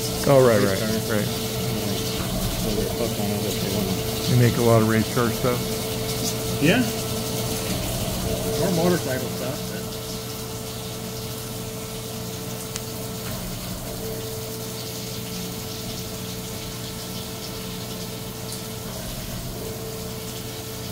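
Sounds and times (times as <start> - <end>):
coolant spray hissing and splashing: 0.0 - 20.9
machine humming: 0.0 - 20.9
steady mid-pitched machine tone: 0.0 - 20.9.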